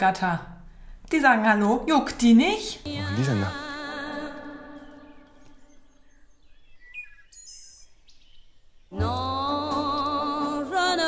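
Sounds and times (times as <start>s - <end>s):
music with singing: 2.9s - 5.5s, 8.9s - 11.0s
short bird chirps: 5.0s - 8.8s.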